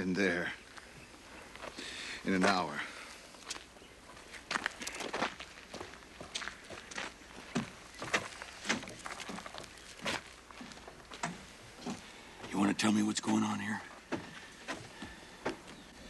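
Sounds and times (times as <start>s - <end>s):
man's footsteps walking away: 0.7s - 16.0s.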